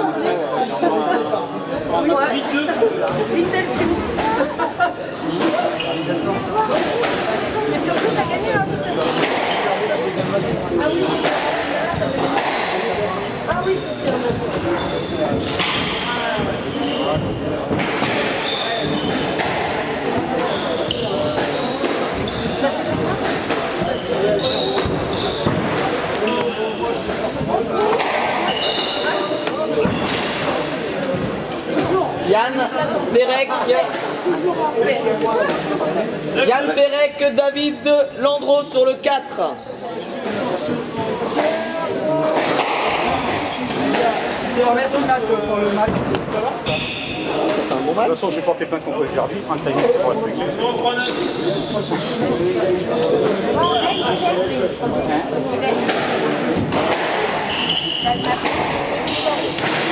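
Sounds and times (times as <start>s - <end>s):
shoe squeaks on wooden floor: 5.6s - 6.3s, 10.8s - 12.4s, 13.4s - 19.4s, 20.3s - 27.7s, 28.4s - 30.4s, 46.6s - 48.2s, 50.6s - 52.2s, 53.0s - 54.5s, 57.4s - 58.4s.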